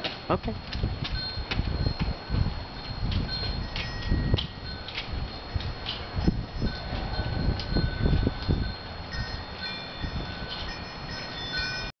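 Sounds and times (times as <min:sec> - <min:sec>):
bell-like chimes ringing: 0:01.2 - 0:11.9.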